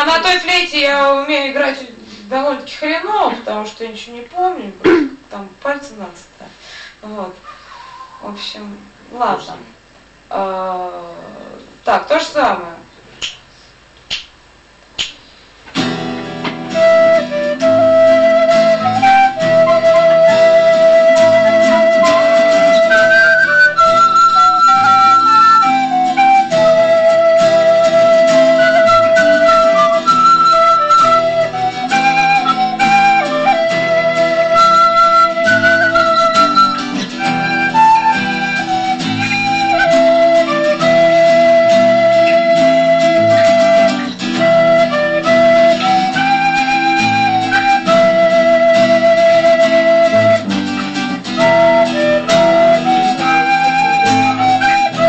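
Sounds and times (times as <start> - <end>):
acoustic guitar: 15.0 - 55.0
recorders playing slow tune: 15.8 - 55.0.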